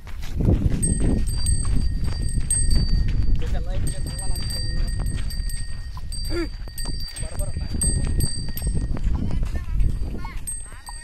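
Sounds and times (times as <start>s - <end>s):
hooves trudging through soil: 0.0s - 11.0s
wind rumbling on microphone: 0.0s - 11.0s.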